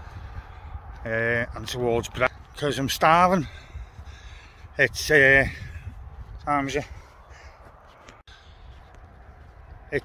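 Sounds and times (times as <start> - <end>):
crow cawing: 7.2 - 7.7.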